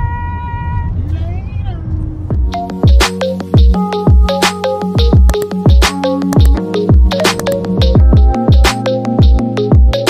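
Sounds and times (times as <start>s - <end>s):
road rumble inside car: 0.0s - 2.4s.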